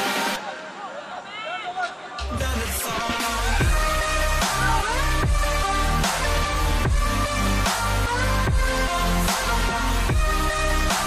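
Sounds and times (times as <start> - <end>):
song: 2.2 - 11.0.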